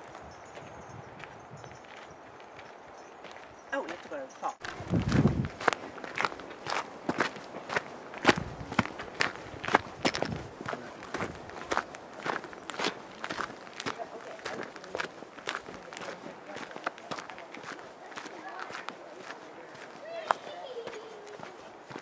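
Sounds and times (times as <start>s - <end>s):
footsteps crunching on gravel: 0.0s - 22.0s.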